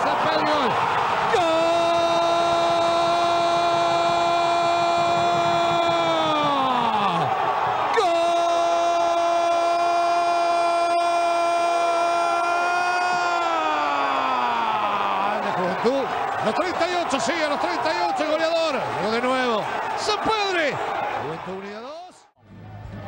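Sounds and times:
man shouting goal: 0.0 - 21.9.

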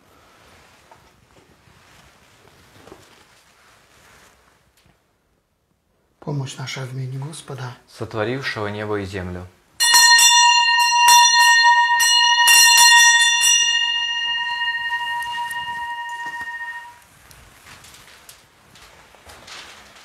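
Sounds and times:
small hand bell ringing: 9.8 - 17.0.

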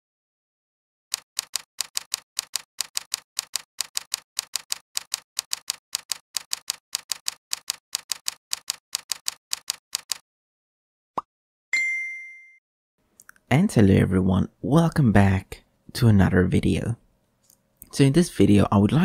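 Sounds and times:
keyboard key clicks: 1.2 - 10.2.

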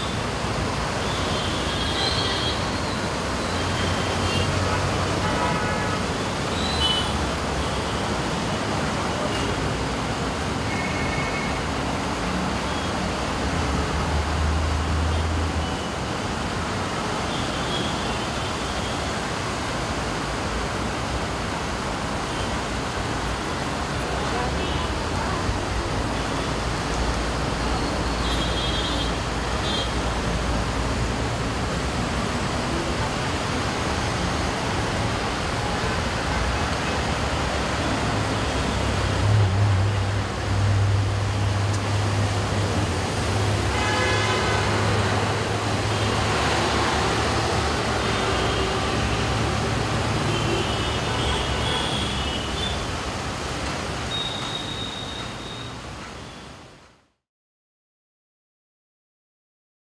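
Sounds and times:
traffic on wet road: 0.0 - 56.8.

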